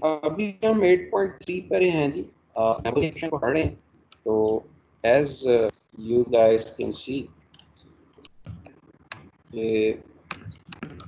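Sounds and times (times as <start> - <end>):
man's hesitant voice: 0.0 - 3.7, 4.3 - 7.2, 9.6 - 10.0.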